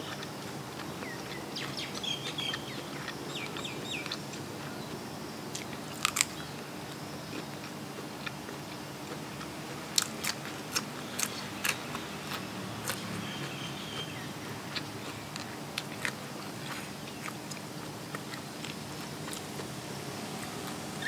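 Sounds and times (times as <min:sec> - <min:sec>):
chewing crisp vegetable: 0:00.0 - 0:21.0
birds chirping: 0:00.8 - 0:05.0, 0:13.0 - 0:15.4.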